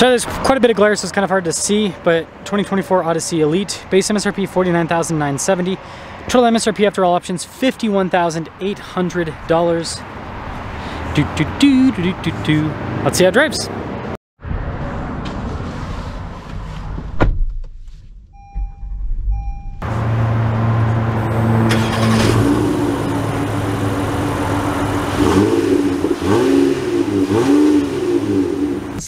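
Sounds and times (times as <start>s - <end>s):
thump: 16.5s - 19.2s
two-part electronic beep: 18.4s - 19.8s
car engine running and revving: 19.3s - 29.0s.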